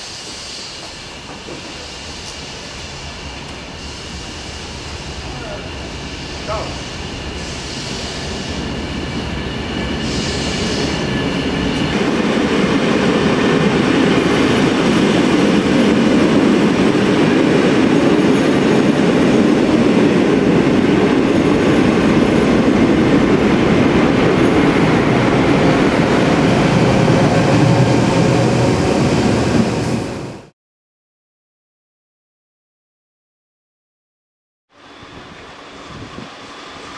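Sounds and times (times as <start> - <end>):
passenger train rumbling past: 0.0 - 30.5, 34.7 - 36.9.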